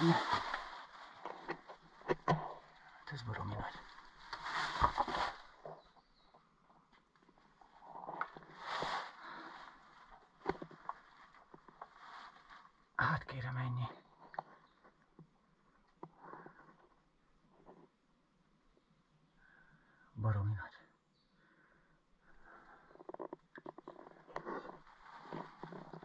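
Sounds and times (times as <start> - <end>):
rustling and scraping: 0.0 - 6.0, 7.2 - 12.8, 22.9 - 26.0.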